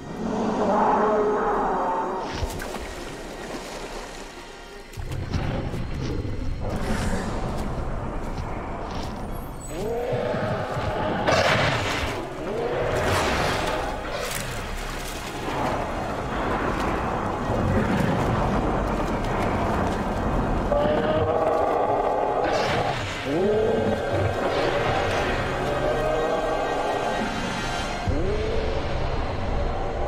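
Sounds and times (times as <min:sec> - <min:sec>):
dinosaur roars: 0:00.1 - 0:02.3
documentary soundtrack music: 0:00.7 - 0:30.0.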